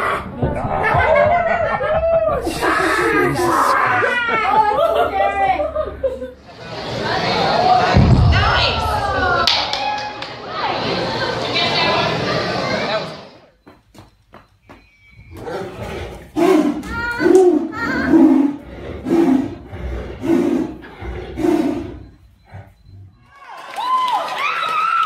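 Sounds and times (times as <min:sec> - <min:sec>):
high excited voices: 0:00.0 - 0:13.2, 0:15.3 - 0:25.0
tigers snarling and roaring: 0:15.3 - 0:23.3.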